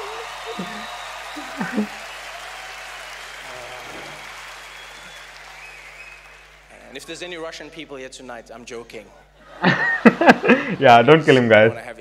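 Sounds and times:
audience applauding: 0.0s - 7.1s, 9.6s - 10.9s.

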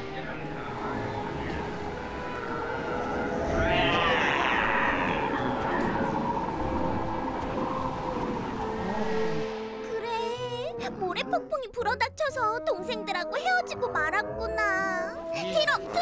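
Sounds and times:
soundtrack music: 0.0s - 16.0s
rising animal cry: 3.4s - 6.3s.

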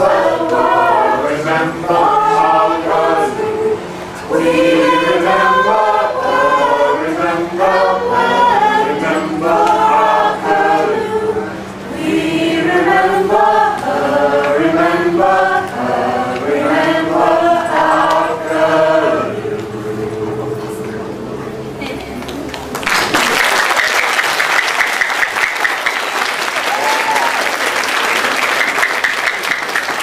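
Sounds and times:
mixed choir singing in harmony: 0.0s - 21.8s.

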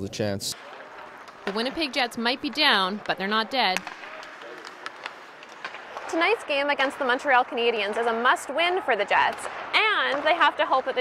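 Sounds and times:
hockey sticks clicking pucks: 0.6s - 11.0s.

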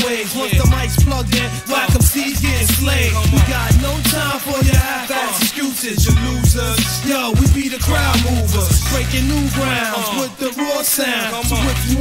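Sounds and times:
kick drums: 0.6s - 1.3s, 1.9s - 2.2s, 3.2s - 3.9s, 4.6s - 4.9s, 6.0s - 6.8s, 7.4s - 7.6s
heavy bass notes: 0.6s - 4.8s, 6.0s - 9.8s, 11.4s - 12.0s.

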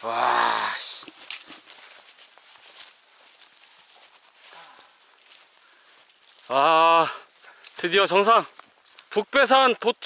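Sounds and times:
footsteps through dry grass: 0.0s - 10.0s
stems rustling: 0.0s - 10.0s.

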